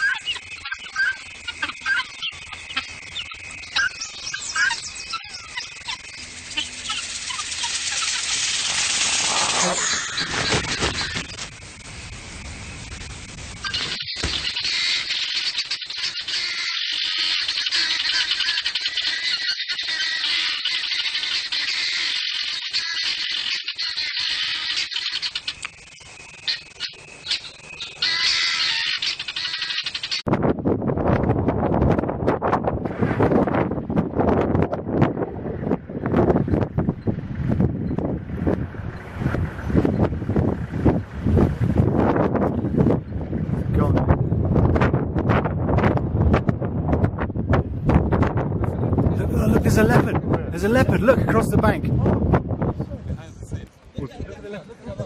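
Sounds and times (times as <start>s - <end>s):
chorus of bird calls: 0.0s - 30.3s
wind buffeting microphone: 30.2s - 55.0s.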